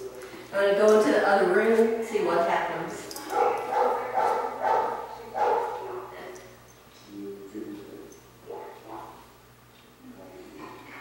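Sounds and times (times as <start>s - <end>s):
faint low puppy sounds: 8.1s - 9.3s.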